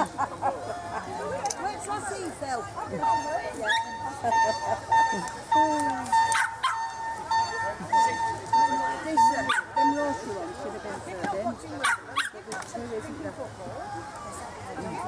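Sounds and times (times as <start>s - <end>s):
crowd chatter: 0.0s - 15.0s
high-pitched beeps: 3.0s - 10.3s
dogs barking: 6.3s - 7.0s, 9.3s - 9.8s, 11.8s - 12.4s.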